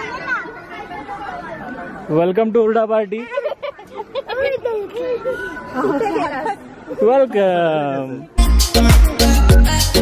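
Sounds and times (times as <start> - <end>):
young children chattering: 0.0 - 8.4.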